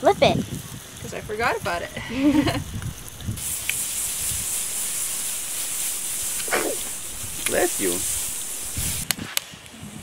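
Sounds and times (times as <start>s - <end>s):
butter sizzling on hot griddle: 0.5s - 9.0s.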